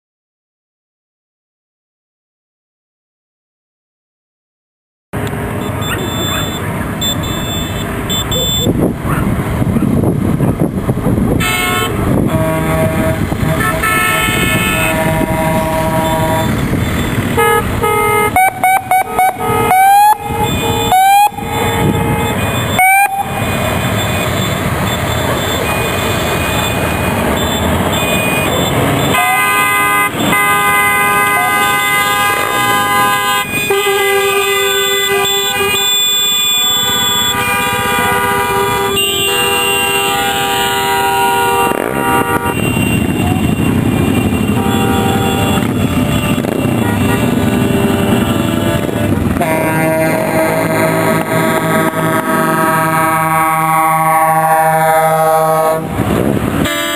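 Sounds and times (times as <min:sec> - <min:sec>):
engine and road noise: 0:05.1 - 0:56.9
chord horn: 0:11.4 - 0:23.6, 0:25.4 - 0:56.0, 0:56.6 - 0:56.9
short rising horn blasts: 0:11.4 - 0:56.9.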